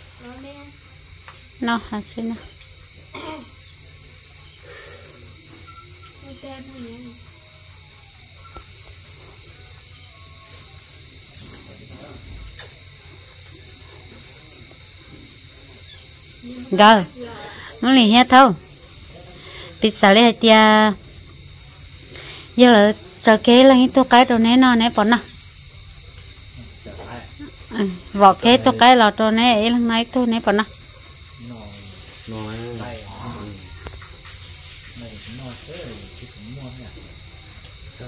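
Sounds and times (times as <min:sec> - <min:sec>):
insect chorus chirring: 0:00.0 - 0:38.0
person speaking: 0:27.8 - 0:29.2.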